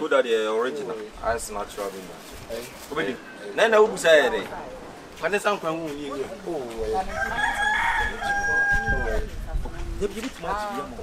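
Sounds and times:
rooster crowing: 7.0 - 9.3.

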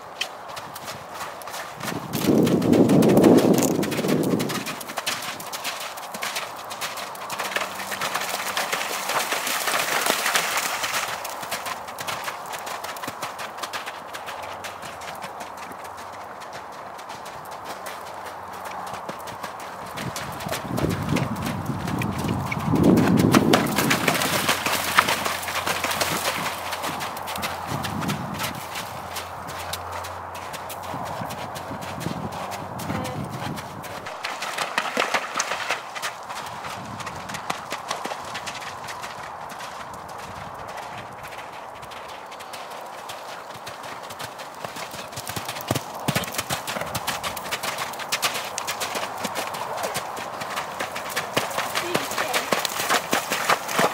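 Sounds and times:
horse hoofbeats on mud: 0.0 - 53.9.

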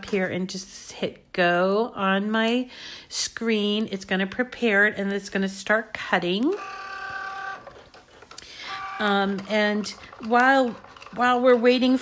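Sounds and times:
cutting machine motors whining: 6.5 - 11.7.

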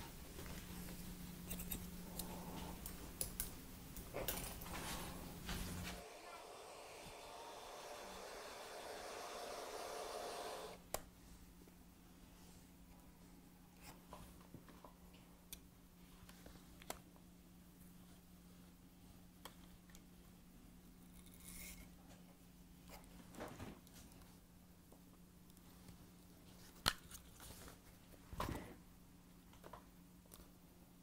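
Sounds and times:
faint steady hum: 0.0 - 31.0
hair dryer blowing: 6.0 - 10.8.

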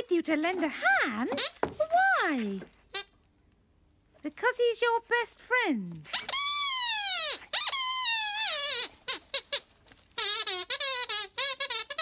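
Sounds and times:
squeaky puppet voice: 1.0 - 2.2, 2.9 - 3.2, 6.1 - 12.0.

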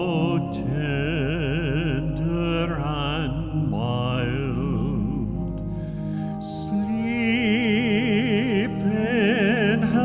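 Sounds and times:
man singing a hymn: 0.0 - 10.0
sustained accompanying chords: 0.0 - 10.0.

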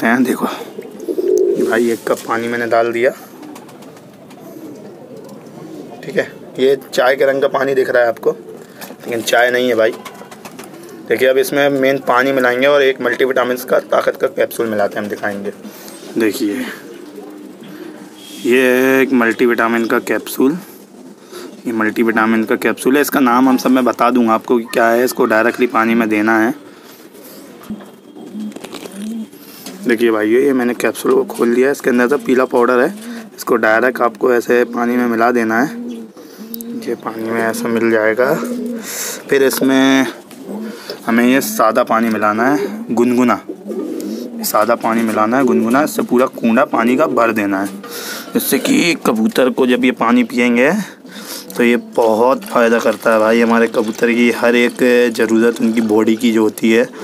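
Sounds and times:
pigeons cooing softly: 0.0 - 57.0.

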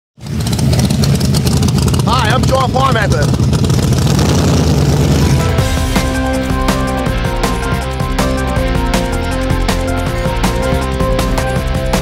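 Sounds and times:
car engine rumbling: 0.2 - 12.0.

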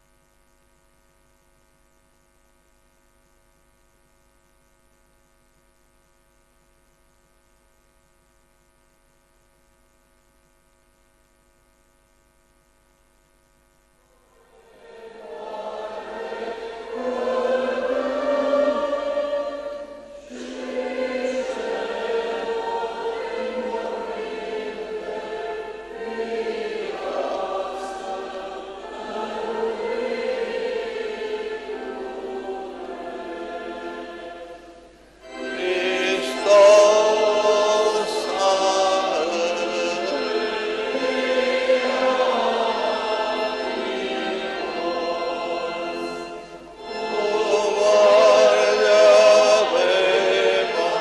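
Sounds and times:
church choir chanting: 14.2 - 51.0.

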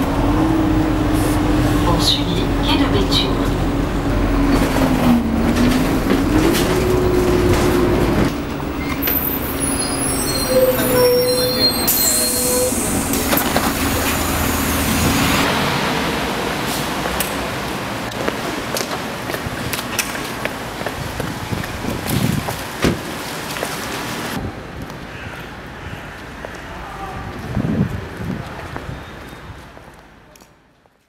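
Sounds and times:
bus engine rumble with whine: 0.0 - 19.8
street noise: 0.0 - 31.0
high squealing tones: 8.8 - 15.3.

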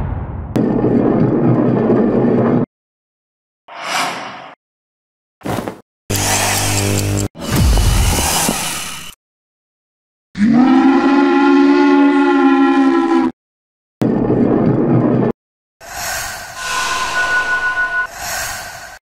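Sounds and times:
rough noise with thin high tone: 16.5 - 19.0.

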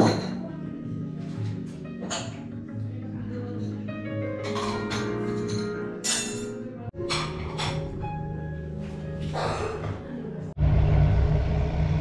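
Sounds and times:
background music: 0.0 - 10.6
road traffic rumble: 10.6 - 12.0.

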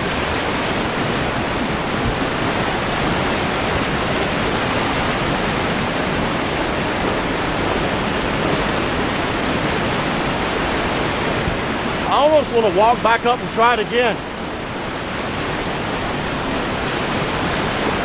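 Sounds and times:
whitewater rushing: 0.0 - 18.0.

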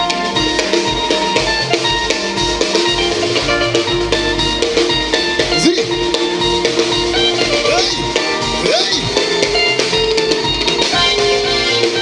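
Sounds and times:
drum kit: 0.0 - 12.0
electric guitar: 0.0 - 12.0
live band music: 0.0 - 12.0.

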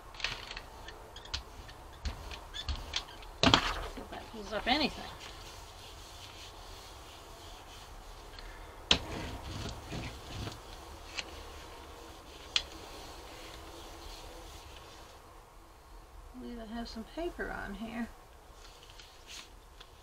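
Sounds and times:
low steady hum: 0.0 - 20.0
hand rubbing paper: 0.1 - 15.2, 18.6 - 20.0.

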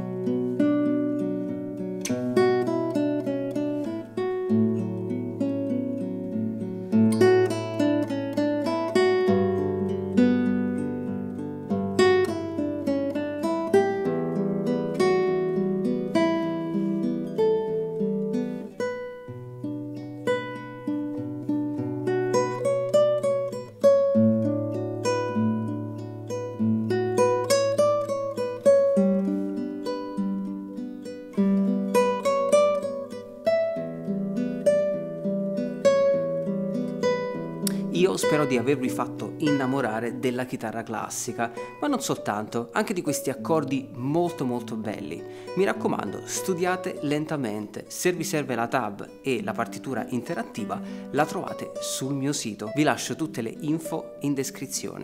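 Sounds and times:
classical guitar fingerstyle: 0.0 - 55.0.

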